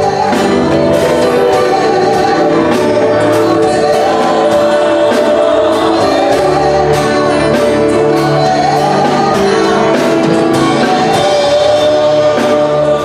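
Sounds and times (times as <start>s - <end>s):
group singing gospel song: 0.0s - 13.0s
steady beat: 0.0s - 13.0s.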